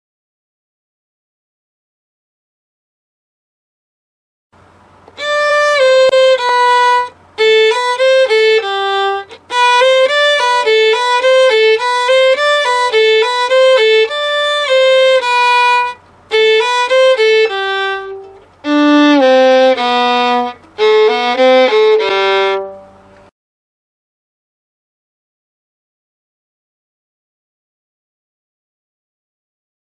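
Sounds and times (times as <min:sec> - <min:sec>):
solo violin melody: 0:05.0 - 0:23.3.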